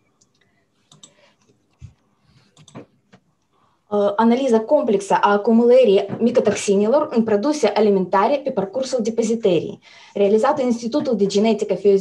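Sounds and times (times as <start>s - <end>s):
computer clicking: 0.2s - 1.6s, 2.4s - 3.2s.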